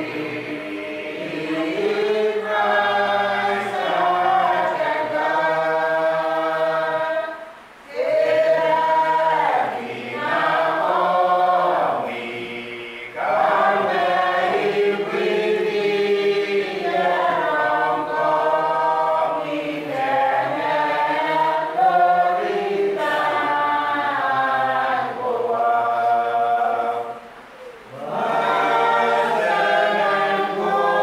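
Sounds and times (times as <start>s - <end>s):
congregation singing: 0.0s - 31.0s.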